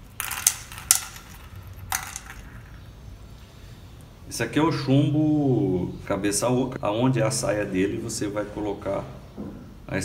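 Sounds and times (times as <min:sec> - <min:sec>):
steel balls clinking in glass bowl: 0:00.0 - 0:02.9.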